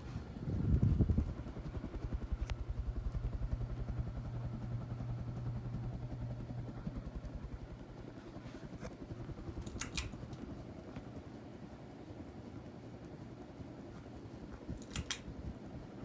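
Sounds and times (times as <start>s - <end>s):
ceiling fan motor humming: 0.0s - 16.0s
low rumble: 0.2s - 8.2s
single click: 14.8s - 15.2s.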